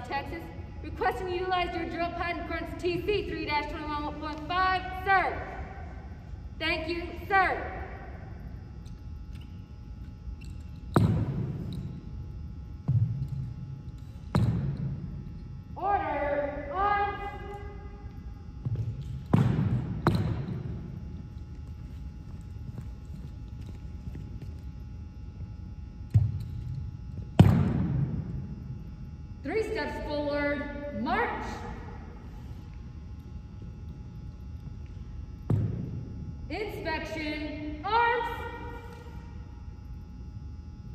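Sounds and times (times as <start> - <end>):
person shouting a command: 37.9 - 38.8.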